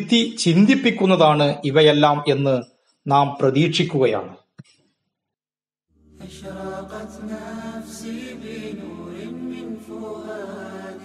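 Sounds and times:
low steady drone: 6.0 - 11.0
chanted voice: 6.2 - 11.0.

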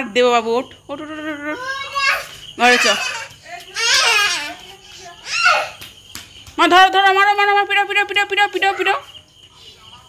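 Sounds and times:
young child shouting: 5.2 - 5.8.

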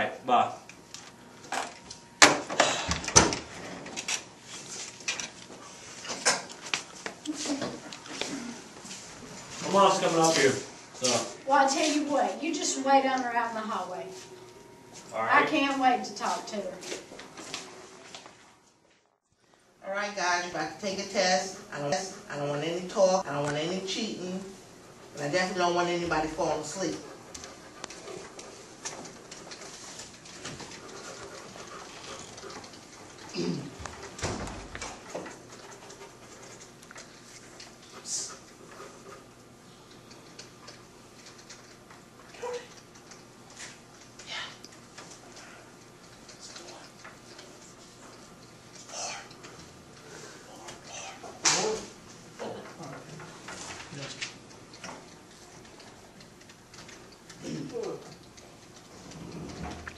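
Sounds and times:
pencils scratching on paper: 25.2 - 33.3.

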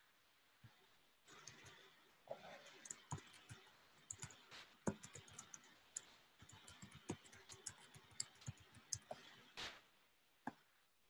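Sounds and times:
keyboard and mouse clicking: 1.3 - 1.8, 2.7 - 9.2.

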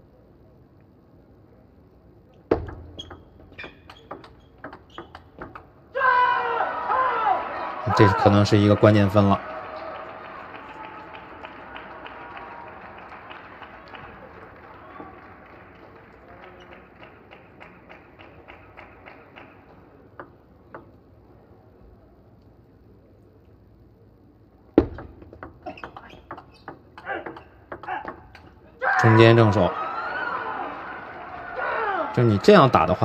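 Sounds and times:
table tennis ball bouncing and struck: 2.4 - 5.8, 20.2 - 21.0, 24.8 - 28.6
arena crowd noise: 5.8 - 24.7, 27.0 - 33.0
crowd clapping: 6.6 - 20.1, 29.0 - 33.0.

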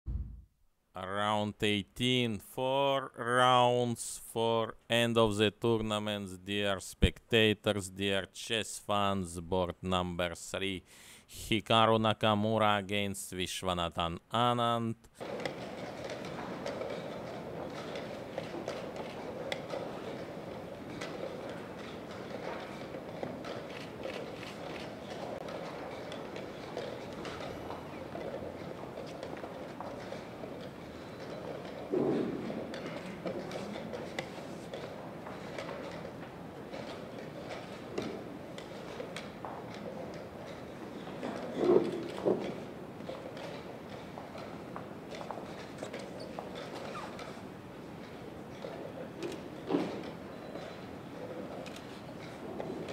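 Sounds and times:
footsteps: 0.0 - 0.5, 15.1 - 52.9
loud bumps: 0.0 - 0.5
room hum: 0.1 - 52.9.

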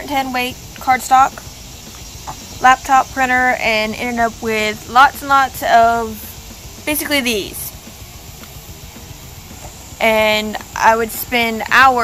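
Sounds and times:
low rumble: 0.0 - 12.0
steady background hiss: 0.0 - 12.0.

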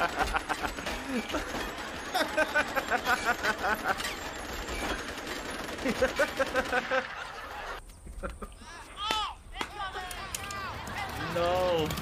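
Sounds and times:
man laughing: 0.0 - 4.1, 5.8 - 8.8
machine gun firing: 1.4 - 7.3.

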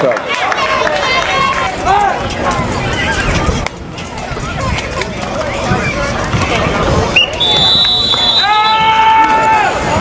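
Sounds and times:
onlookers shouting: 0.0 - 3.5, 7.4 - 10.0
outdoor background noise: 0.0 - 10.0.

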